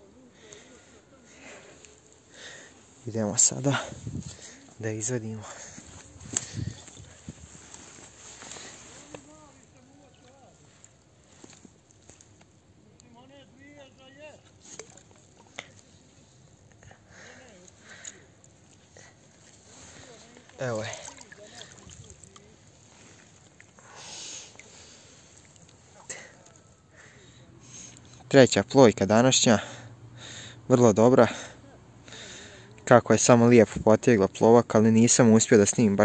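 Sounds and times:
water sloshing: 0:00.5 - 0:12.7, 0:13.7 - 0:16.7, 0:17.5 - 0:26.6
fish splashing at water surface: 0:20.0 - 0:23.8.

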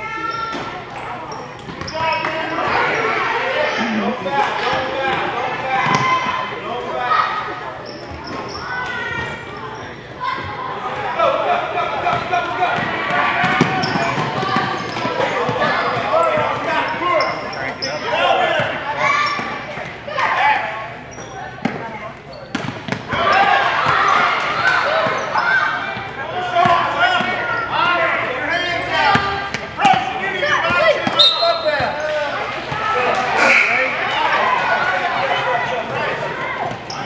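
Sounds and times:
people shouting and chattering: 0:00.0 - 0:37.0.

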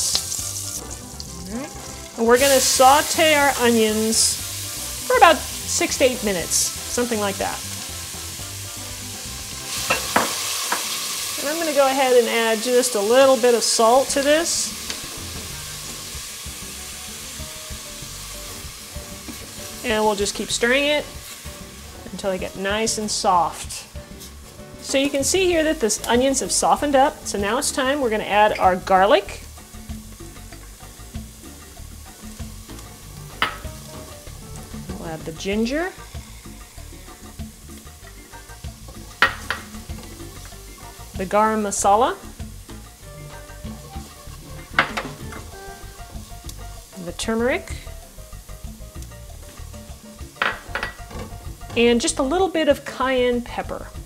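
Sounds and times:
onions sizzling in oil: 0:00.0 - 0:54.0
utensil knocking against pot: 0:09.9 - 0:10.8, 0:33.4 - 0:33.7, 0:39.2 - 0:39.7, 0:50.4 - 0:51.8.

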